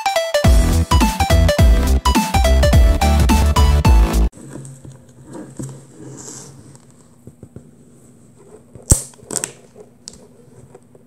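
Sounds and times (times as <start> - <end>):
fingernail scraping plastic wrap: 4.4 - 10.7.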